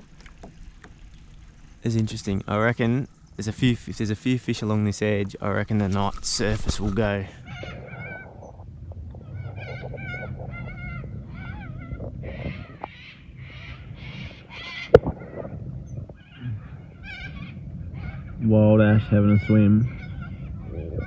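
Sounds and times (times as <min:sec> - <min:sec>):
low steady hum: 0:00.0 - 0:21.0
waterbirds calling: 0:00.0 - 0:21.0.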